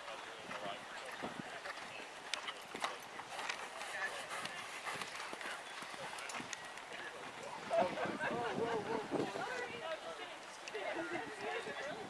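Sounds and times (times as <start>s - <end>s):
horse hoofbeats on sand: 0.0s - 7.3s
faint voices: 0.0s - 12.0s.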